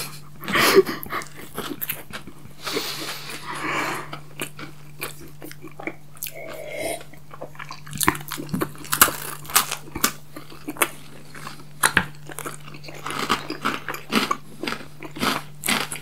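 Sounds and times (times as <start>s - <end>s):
chewing and crunching candy: 0.0s - 16.0s.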